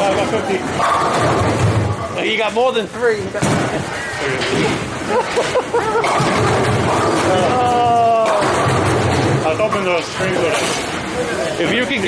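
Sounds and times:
bowling balls rolling: 0.0s - 2.5s, 3.2s - 11.2s
bowling pins clattering: 0.7s - 2.3s, 3.4s - 11.0s
person laughing: 5.0s - 6.2s.

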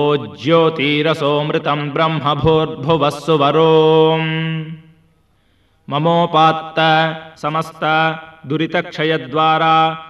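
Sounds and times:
person chanting a mantra: 0.0s - 4.9s, 5.9s - 10.0s.

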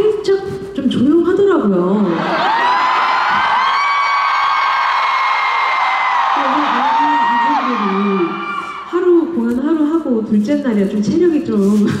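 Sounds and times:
audience screaming and cheering: 2.1s - 9.0s
person talking: 6.4s - 12.0s.

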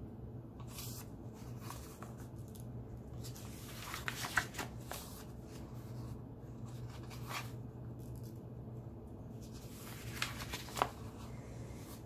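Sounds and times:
paper page turning: 0.6s - 6.0s, 6.6s - 7.6s, 9.4s - 12.0s.

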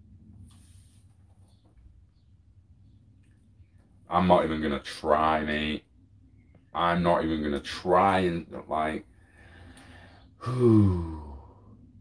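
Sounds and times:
man sighing: 9.4s - 11.8s.

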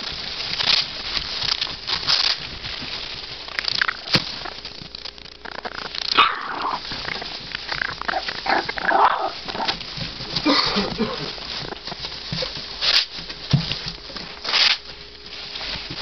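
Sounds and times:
shredded paper rustling: 0.0s - 16.0s
puppies whining: 5.3s - 13.2s.

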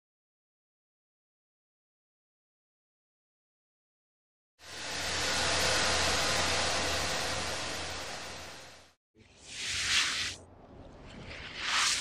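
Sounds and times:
low hum: 4.6s - 9.4s.

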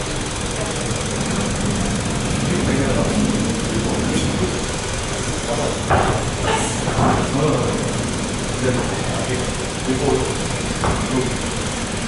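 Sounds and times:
gym background noise: 3.8s - 12.0s.

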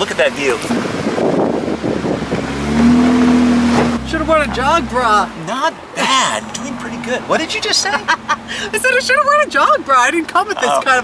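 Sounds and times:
rumbling tyre noise: 0.0s - 10.9s
vehicle engine under load: 0.0s - 11.0s
wind noise: 0.6s - 5.4s
droning engine note: 2.4s - 5.4s.

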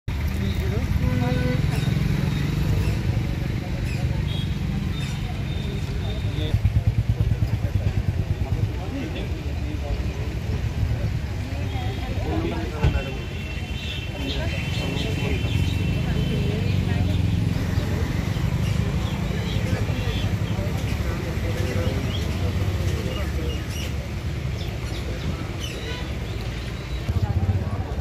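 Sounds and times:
people talking: 0.3s - 26.2s, 26.9s - 28.0s.

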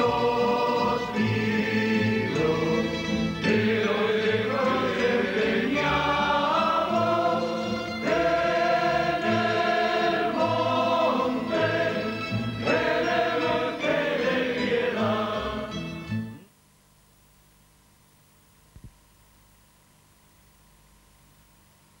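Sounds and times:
choir singing held chords: 0.0s - 16.4s.

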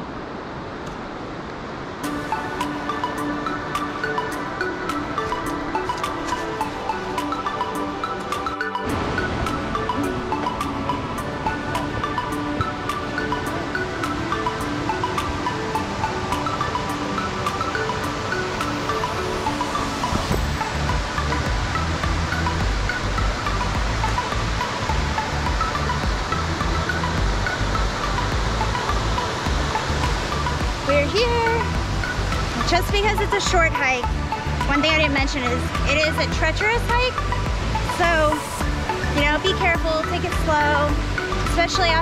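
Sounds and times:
creek water rushing: 0.0s - 42.0s
background music with bass: 2.0s - 42.0s.

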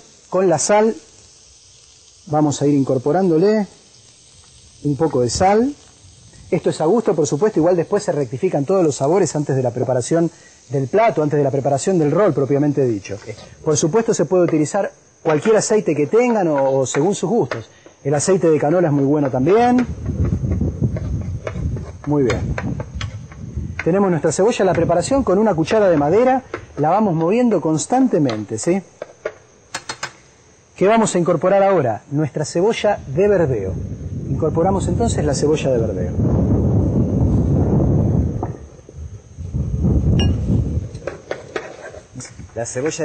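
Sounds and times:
onion sizzling in frying pan: 0.0s - 31.7s.

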